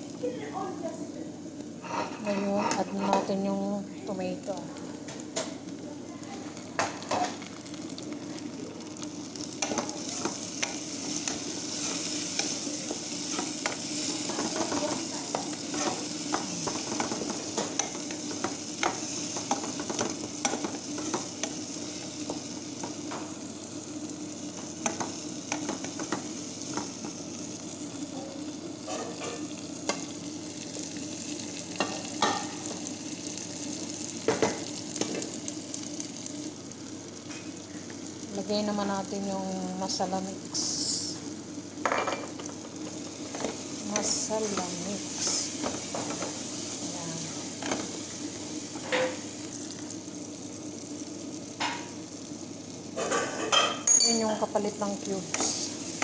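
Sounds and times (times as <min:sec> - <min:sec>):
vegetables sizzling in oil: 0:00.0 - 0:56.0
wooden spoon scraping a pan: 0:01.8 - 0:03.4, 0:09.6 - 0:21.6.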